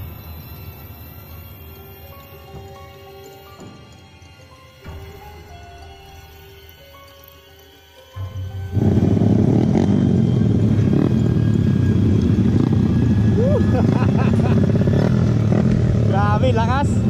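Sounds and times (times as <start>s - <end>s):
motorcycle engine rumble: 8.4s - 17.0s.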